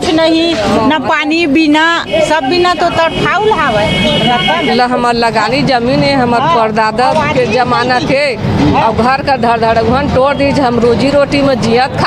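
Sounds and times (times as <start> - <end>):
women talking over one another: 0.0 - 12.0.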